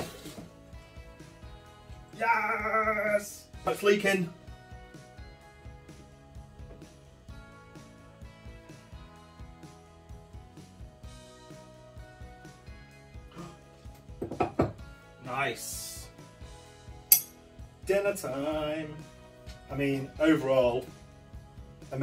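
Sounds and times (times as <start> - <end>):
background music: 0.0 - 22.0
cutlery clink: 17.1 - 17.3.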